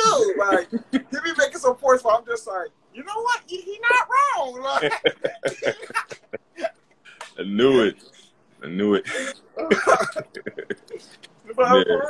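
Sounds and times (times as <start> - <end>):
man laughing: 0.0 - 1.2, 4.7 - 6.8, 9.1 - 11.0.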